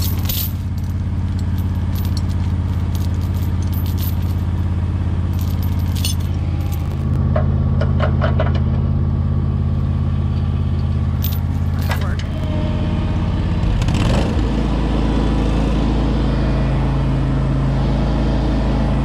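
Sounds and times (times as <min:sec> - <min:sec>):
tow chain links clinking: 0:00.0 - 0:04.6, 0:05.3 - 0:07.2, 0:10.7 - 0:12.5
tractor engine running: 0:00.0 - 0:19.0.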